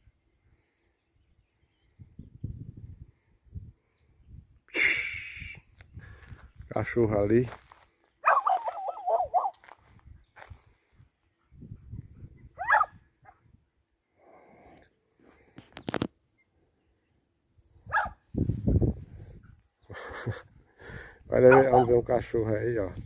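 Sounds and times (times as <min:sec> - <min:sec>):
dog barking: 0:08.2 - 0:09.6, 0:12.6 - 0:13.0, 0:17.9 - 0:18.2, 0:21.5 - 0:22.0.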